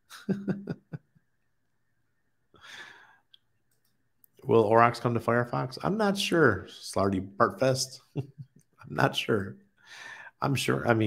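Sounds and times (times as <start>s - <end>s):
man chuckling: 0.0s - 1.3s, 8.0s - 9.0s
breathy sigh: 2.6s - 3.3s, 9.8s - 10.4s.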